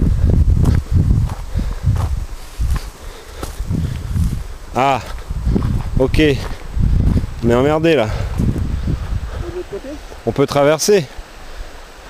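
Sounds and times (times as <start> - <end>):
footsteps through brush: 0.6 - 10.2
leaves and twigs rustling: 0.7 - 10.5.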